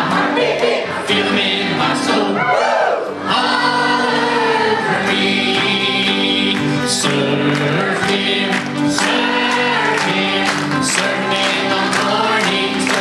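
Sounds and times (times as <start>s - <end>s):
youth choir singing gospel: 0.0s - 13.0s.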